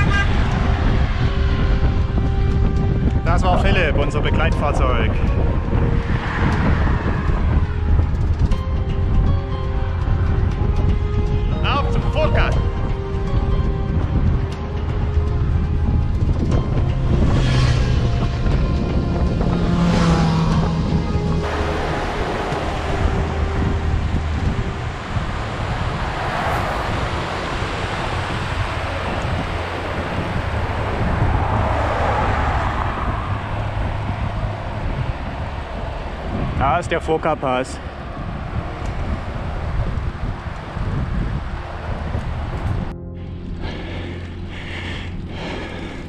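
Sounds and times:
background music with bass line: 0:00.0 - 0:37.2, 0:38.1 - 0:46.0
mountain river rushing over boulders: 0:21.4 - 0:32.7.

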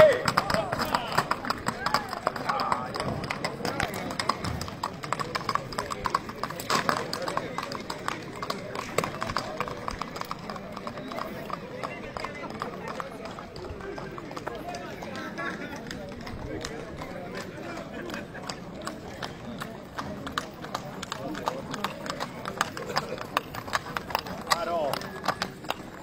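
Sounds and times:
hooves clip-clopping on asphalt: 0:00.0 - 0:26.0
people's voices: 0:00.0 - 0:26.0.

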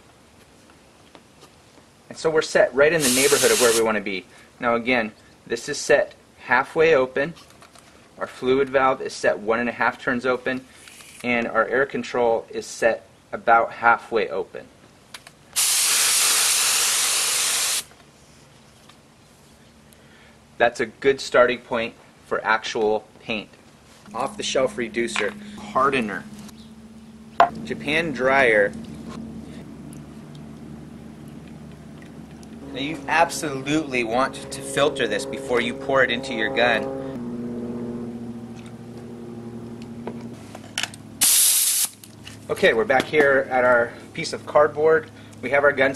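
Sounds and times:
spray gun hissing: 0:03.0 - 0:03.9, 0:15.6 - 0:17.9, 0:41.2 - 0:41.9
low machine hum: 0:23.8 - 0:41.2, 0:42.0 - 0:45.9.

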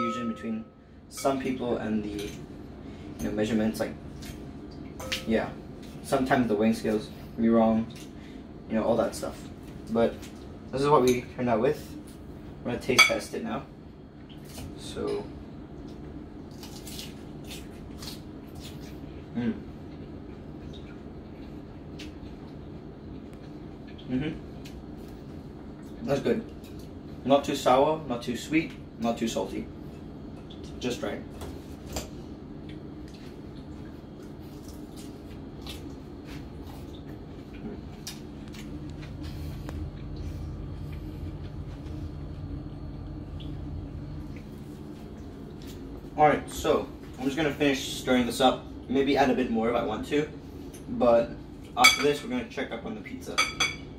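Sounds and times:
steady low hum: 0:00.0 - 0:53.9.

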